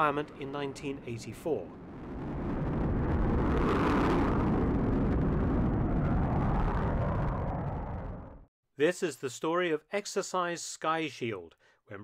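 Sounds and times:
jet flying overhead: 1.6 - 8.5.

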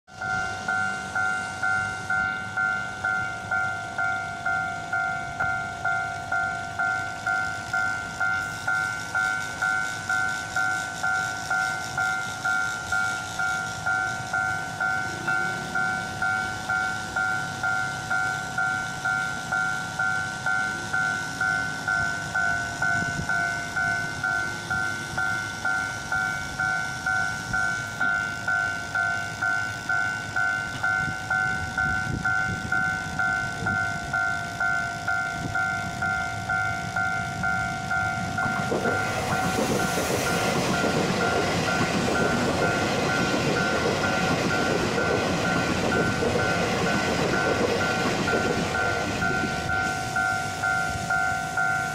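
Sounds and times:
level crossing warning bell: 0.1 - 51.9.

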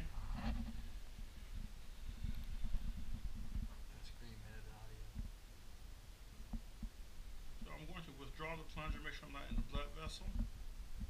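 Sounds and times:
microphone handling bumps: 0.0 - 4.0.

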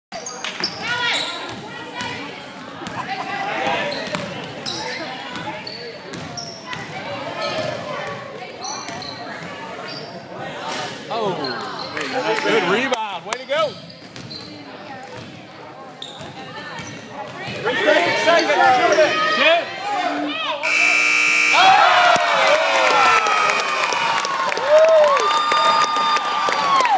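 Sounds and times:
shoe squeaks: 0.2 - 1.5, 3.9 - 6.7, 13.7 - 14.7, 16.0 - 17.1
spectators talking and calling out: 15.4 - 24.3
crowd cheering and shouting: 19.3 - 26.9
scoreboard buzzer: 20.6 - 23.8.

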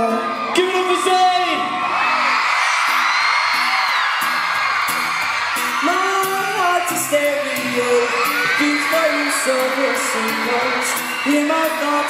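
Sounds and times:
audience screaming and singing: 0.0 - 12.0
live acoustic guitar music: 2.9 - 12.0.

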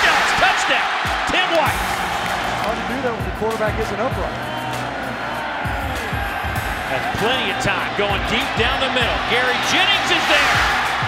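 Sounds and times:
background music with low beat: 0.9 - 11.0.

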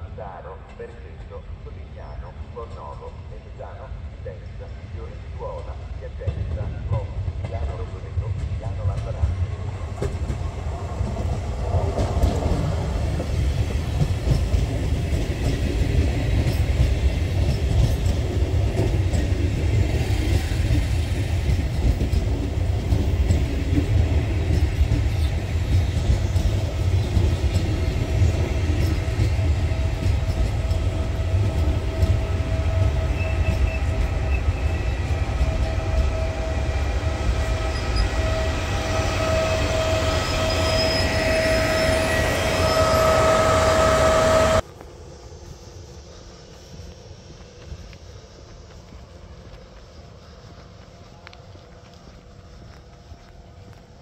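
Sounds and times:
locomotive high whine: 0.0 - 54.0
train rumbling and wheel clatter: 0.0 - 54.0.

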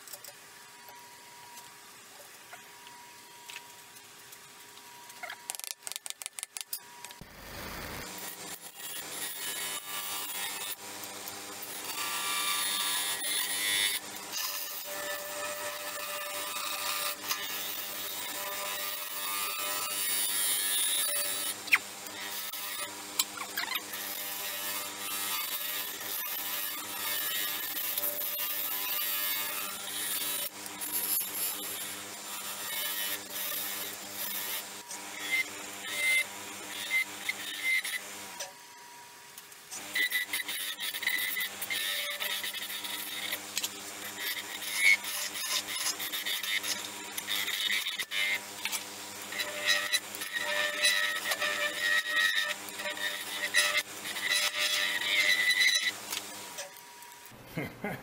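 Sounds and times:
turning tool scraping on lathe: 39.8 - 56.7.

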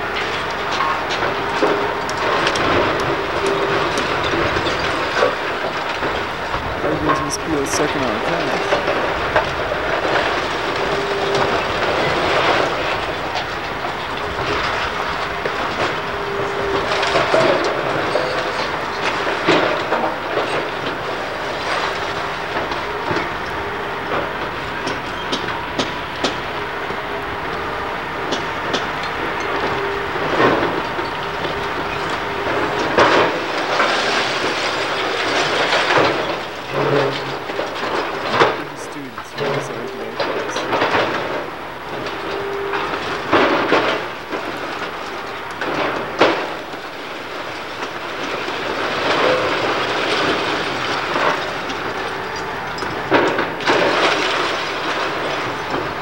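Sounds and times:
excavator working: 0.0 - 56.0.

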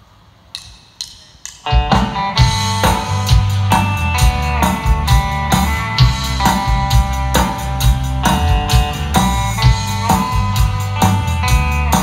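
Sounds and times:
country band playing: 1.6 - 12.0.

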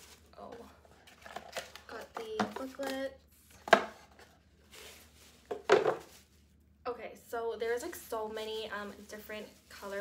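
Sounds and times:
cardboard rustling scrape: 3.9 - 6.4.

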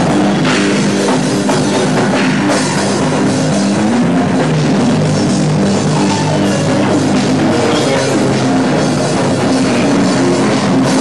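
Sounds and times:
drum kit: 0.0 - 11.0
loud band playing live: 0.0 - 11.0.

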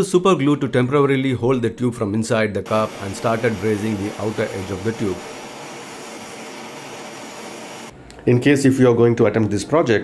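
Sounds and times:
blowtorch flame hissing: 2.7 - 8.0.

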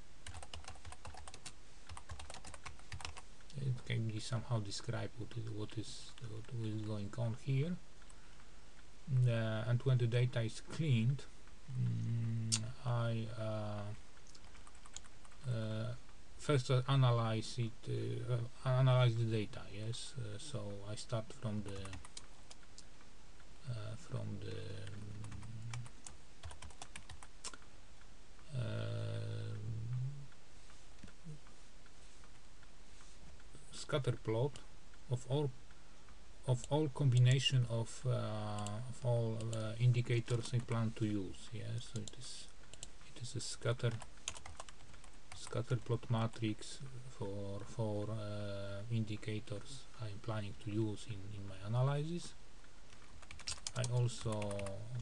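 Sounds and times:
keyboard typing: 0.2 - 3.2, 14.2 - 15.4, 21.6 - 22.8, 24.8 - 27.6, 42.0 - 42.9, 43.9 - 45.9, 52.9 - 55.0
man talking: 3.5 - 7.8, 9.1 - 14.0, 15.4 - 22.0, 23.6 - 25.8, 28.5 - 30.3, 33.6 - 35.6, 36.4 - 42.5, 43.1 - 44.0, 45.4 - 52.4, 53.7 - 55.0.

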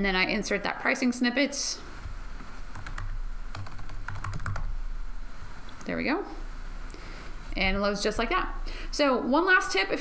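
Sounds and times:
computer keyboard typing: 2.7 - 4.7.

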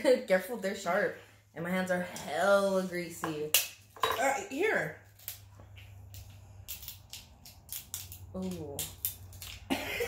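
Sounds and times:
crab shell crackling: 5.0 - 9.7.

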